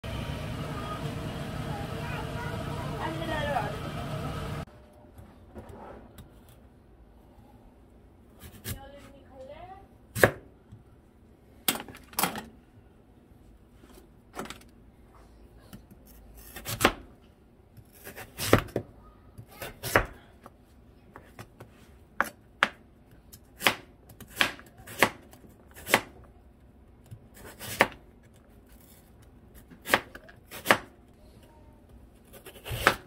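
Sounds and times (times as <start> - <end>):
knife chopping on plastic board: 23.6 - 26.2, 29.6 - 30.9, 32.4 - 33.0
knife slicing radish on cutting board: 27.3 - 28.0, 29.6 - 30.9, 32.2 - 33.0.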